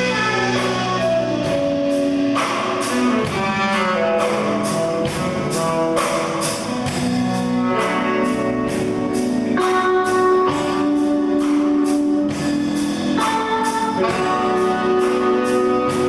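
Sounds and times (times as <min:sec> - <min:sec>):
drum kit: 0:00.0 - 0:16.0
electric guitars: 0:00.0 - 0:16.0.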